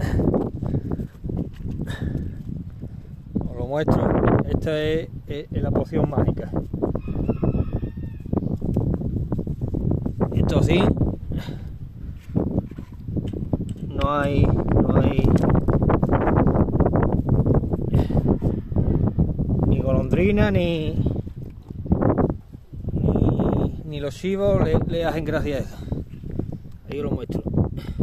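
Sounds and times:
wind rumble on microphone: 0:00.0 - 0:28.0
footsteps on dry ground: 0:00.2 - 0:02.8
person muttering: 0:23.0 - 0:23.8.

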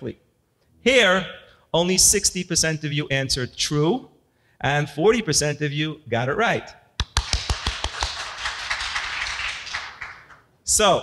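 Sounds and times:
audience applauding: 0:07.0 - 0:10.4.

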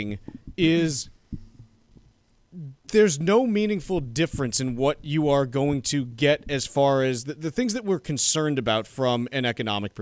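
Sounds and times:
men talking: 0:00.0 - 0:01.1, 0:02.6 - 0:09.9
faint low thumps: 0:03.6 - 0:06.8.

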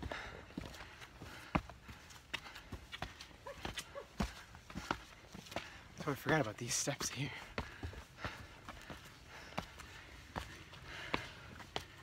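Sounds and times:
footsteps on rock: 0:00.0 - 0:12.0.

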